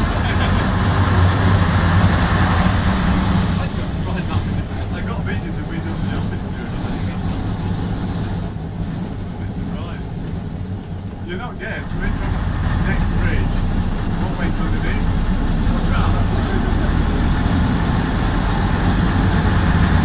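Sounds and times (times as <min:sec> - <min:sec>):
bus diesel engine drone: 0:00.0 - 0:20.0.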